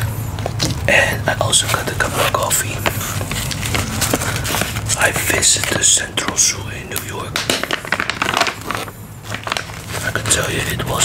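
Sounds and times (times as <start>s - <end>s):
plastic pouch crinkling: 1.6s - 10.7s.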